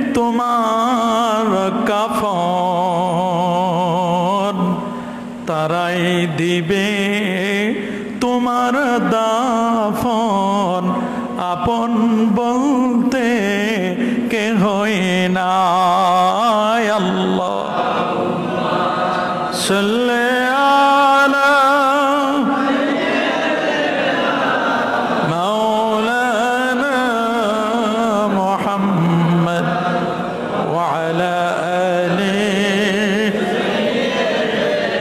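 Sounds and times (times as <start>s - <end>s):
man chanting into microphone: 0.0s - 23.6s, 25.1s - 34.8s.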